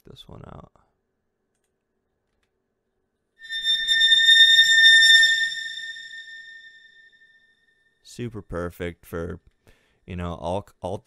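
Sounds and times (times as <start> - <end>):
bright metallic ringing tone: 3.4 - 7.5.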